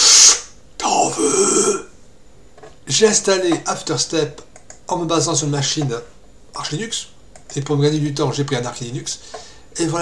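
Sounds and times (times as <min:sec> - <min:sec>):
man belching vocal noise: 0:00.8 - 0:01.9.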